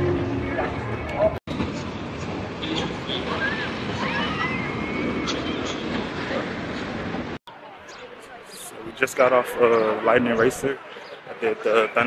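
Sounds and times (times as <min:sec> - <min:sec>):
roller coaster rumbling on track: 0:00.0 - 0:12.0.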